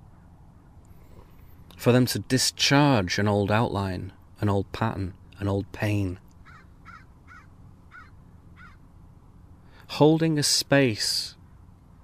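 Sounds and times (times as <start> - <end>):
faint bird calling: 0.0 - 1.8, 6.4 - 8.9
low steady hum: 0.0 - 12.0.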